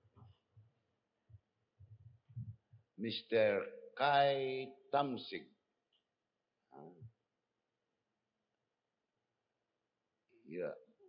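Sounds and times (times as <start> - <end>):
faint low bumps: 1.3 - 2.8.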